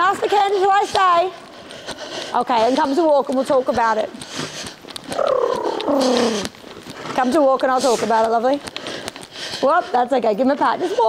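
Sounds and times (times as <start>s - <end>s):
horse blowing through nostrils: 5.0s - 6.6s.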